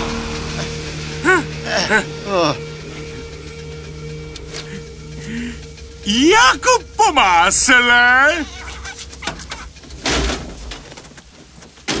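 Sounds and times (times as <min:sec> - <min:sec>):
car crash metal crunch: 0:09.9 - 0:11.2, 0:11.8 - 0:12.0.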